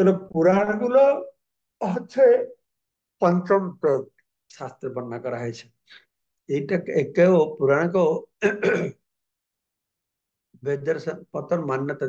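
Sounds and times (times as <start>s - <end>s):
man speaking: 0.0s - 2.6s, 3.2s - 8.8s, 10.6s - 12.0s
man clearing throat: 8.4s - 9.0s.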